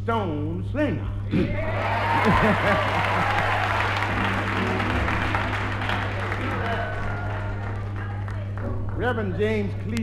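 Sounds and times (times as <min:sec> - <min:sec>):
congregation applause and cheering: 0:01.6 - 0:08.9
held instrumental chords: 0:02.8 - 0:10.0.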